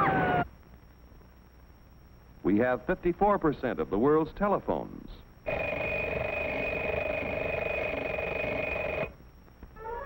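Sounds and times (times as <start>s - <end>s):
telephone bell ringing: 5.5s - 9.1s.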